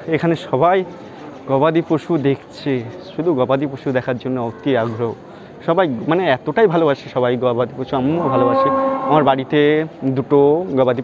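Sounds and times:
cow mooing: 8.0s - 9.5s
man's voice: 8.0s - 9.6s.

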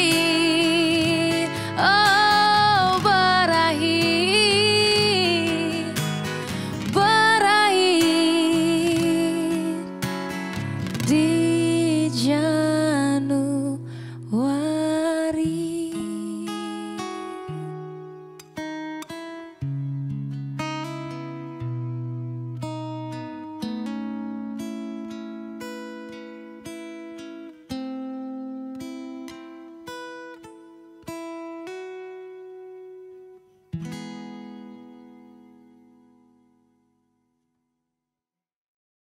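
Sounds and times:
acoustic guitar playing: 0.0s - 37.2s.

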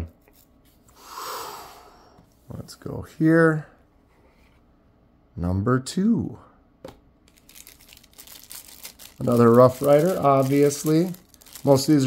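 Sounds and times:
plastic sleeve crinkling: 7.3s - 12.0s.

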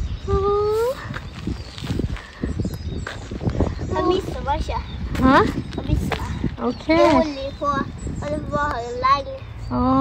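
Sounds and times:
child talking sing-song: 3.9s - 5.0s, 7.0s - 9.8s.

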